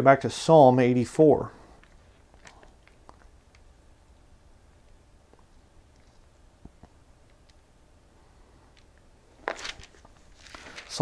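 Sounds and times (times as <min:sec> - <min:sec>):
pages rustling: 0:09.4 - 0:11.0.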